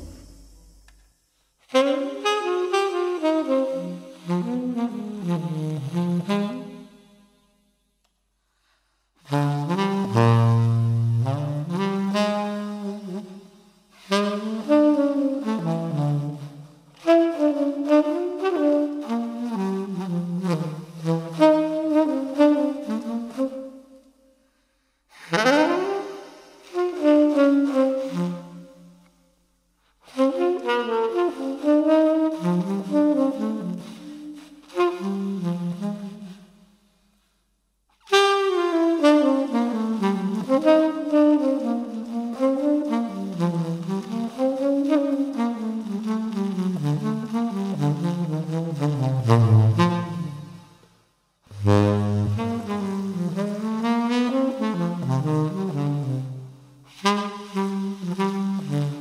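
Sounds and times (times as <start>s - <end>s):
tenor saxophone jazz melody: 1.6s - 7.4s, 9.2s - 24.2s, 25.1s - 29.3s, 29.9s - 37.1s, 38.0s - 59.0s.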